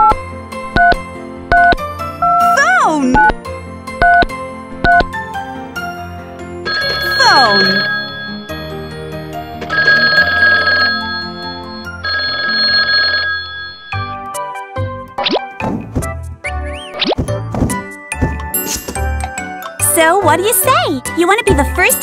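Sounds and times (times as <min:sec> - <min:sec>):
background music: 0:00.0 - 0:22.0
cartoon toy telephone ringing: 0:06.6 - 0:14.0.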